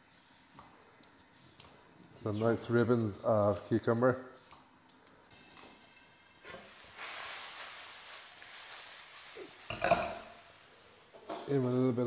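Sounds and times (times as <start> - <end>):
food sizzling in a wok: 5.3 - 11.4.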